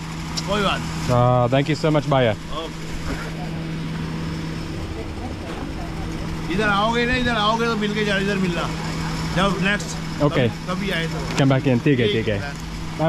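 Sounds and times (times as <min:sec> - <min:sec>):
engine idling: 0:00.0 - 0:13.0
street background noise: 0:00.0 - 0:13.0.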